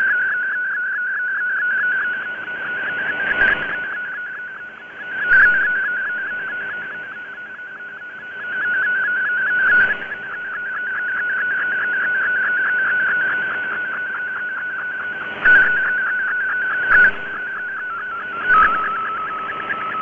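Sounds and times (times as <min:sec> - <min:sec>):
warbling digital data tone: 0:00.0 - 0:20.0.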